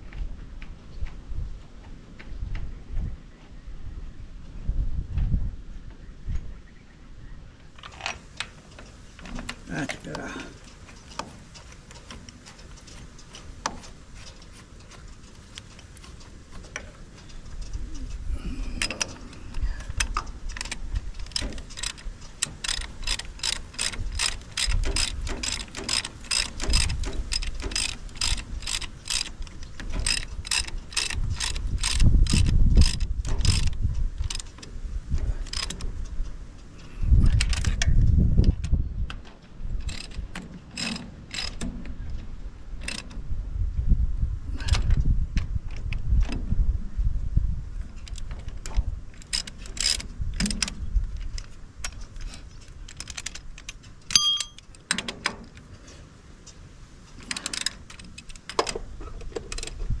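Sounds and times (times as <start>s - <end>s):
low knocks of tool against engine: 8.5s - 36.4s, 54.8s - 60.0s
ratchet spanner clicking: 18.8s - 36.4s, 39.8s - 41.7s, 42.8s - 43.2s, 48.0s - 55.4s, 57.2s - 58.8s.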